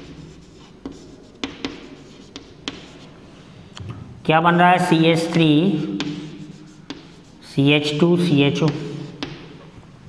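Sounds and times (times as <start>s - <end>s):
chalk tapping on board: 0.0s - 3.1s, 5.8s - 7.5s, 8.5s - 9.6s
chalk scratching on blackboard: 0.0s - 3.2s, 5.3s - 9.7s.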